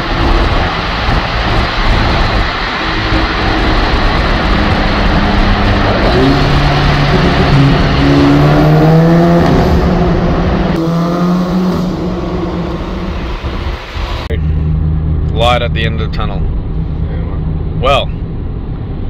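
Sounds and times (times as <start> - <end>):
car engine accelerating: 0.0 - 19.0
road noise: 0.0 - 19.0.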